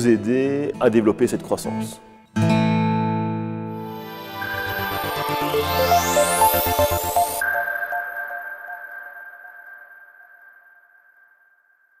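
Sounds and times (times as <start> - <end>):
sustained high synthesizer tone: 3.8 - 12.0.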